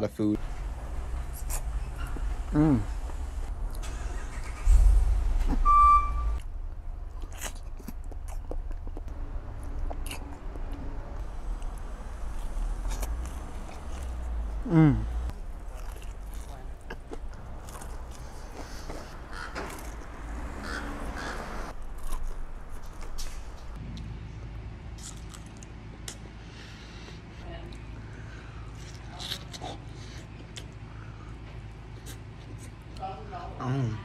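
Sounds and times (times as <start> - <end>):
deep low rumble: 0.4 - 24.4
short throaty sounds: 0.6 - 6.4, 11.9 - 15.4
high-pitched electronic beep: 5.6 - 6.4
chewing crunchy fried food: 7.1 - 14.2, 15.3 - 20.0, 21.8 - 23.3, 25.0 - 26.3, 28.7 - 31.1.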